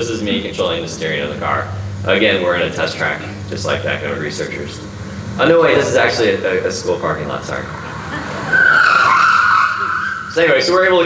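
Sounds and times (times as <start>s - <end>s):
car tyres squealing over loudspeakers: 7.6s - 10.9s.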